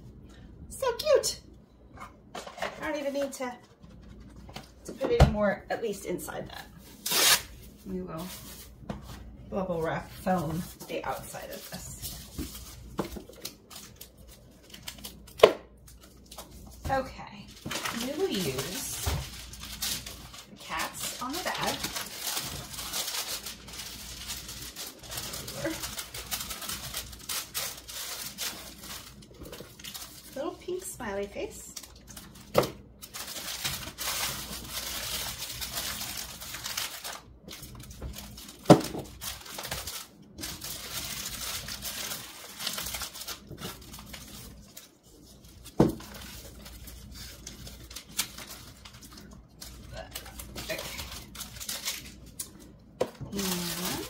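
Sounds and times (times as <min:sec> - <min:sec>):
tissue paper crinkling: 0:06.6 - 0:54.0.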